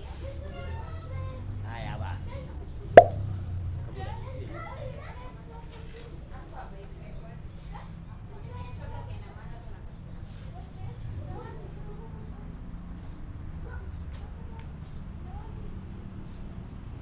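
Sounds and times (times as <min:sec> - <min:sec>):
children's voices: 0:00.1 - 0:01.6, 0:10.6 - 0:12.6, 0:13.6 - 0:16.1
sharp click or slap: 0:03.0 - 0:03.2.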